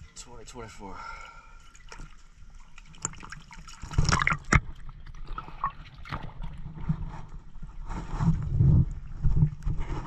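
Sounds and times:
water sloshing and gurgling: 0.0 - 10.0.

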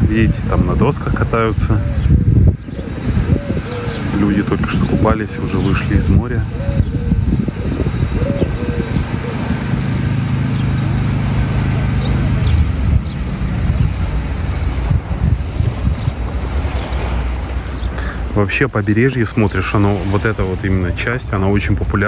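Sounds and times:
low steady drone: 0.0 - 22.0
wind buffeting microphone: 0.0 - 22.0.

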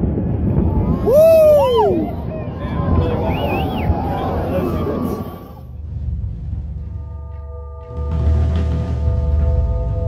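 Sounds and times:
deep demolition rumble: 0.0 - 7.4
people's voices: 0.7 - 5.7.

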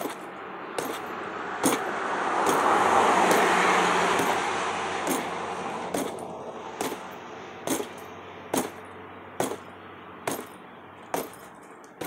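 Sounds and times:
road vehicle passing: 0.0 - 12.0
punches hitting heavy bag: 0.8 - 2.7, 4.2 - 6.2, 6.8 - 8.8, 9.4 - 9.7, 10.3 - 11.5.

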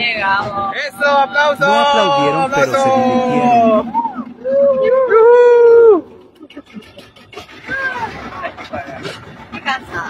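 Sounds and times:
drawn-out howling cry: 1.6 - 6.1.

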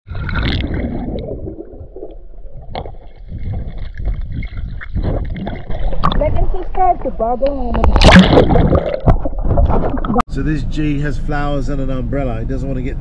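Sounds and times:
pool water sloshing and bubbling: 0.1 - 6.7, 7.7 - 10.2.

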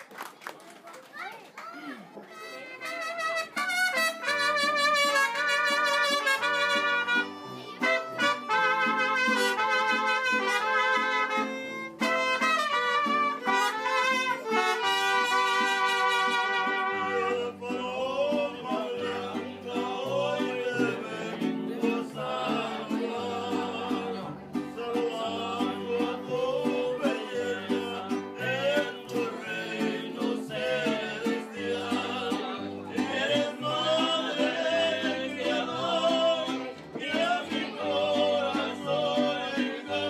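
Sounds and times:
mariachi band playing: 2.0 - 40.0
loud trumpets: 2.3 - 17.3.

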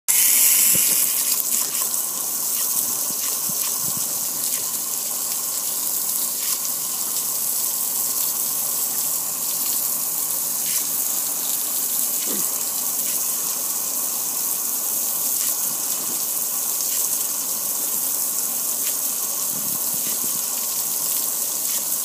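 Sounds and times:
water splashing on patio: 0.1 - 22.0
water spray hissing on metal grill: 0.1 - 22.0.

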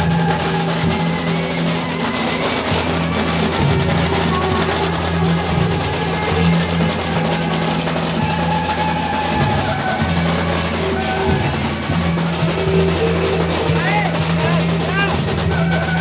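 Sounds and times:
drums and percussion: 0.0 - 16.0
sustained instrumental tones: 0.0 - 16.0.

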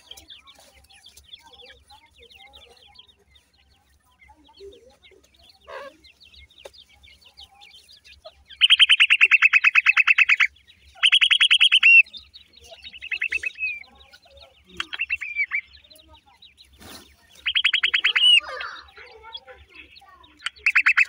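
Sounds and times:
birds chirping rapidly: 0.0 - 21.0.

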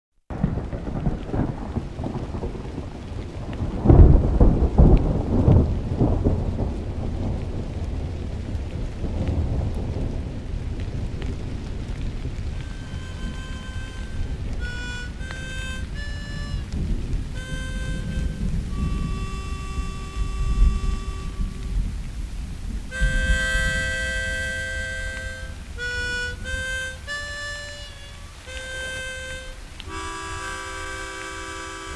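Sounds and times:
loud thunderclap: 0.3 - 27.3
steady rain: 0.3 - 31.9
thunder rumbling: 0.3 - 31.9
harmonica playing: 12.6 - 21.8, 22.9 - 31.9.

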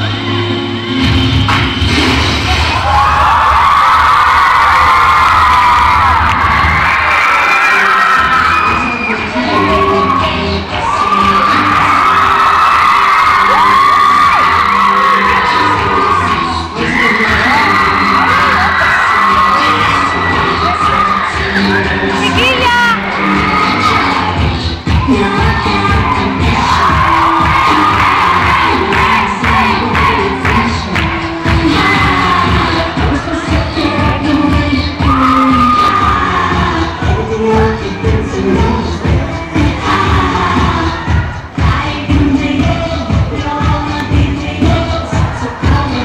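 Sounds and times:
crowd screaming and cheering: 0.0 - 46.0
loud dance music with bass beat: 0.0 - 46.0.

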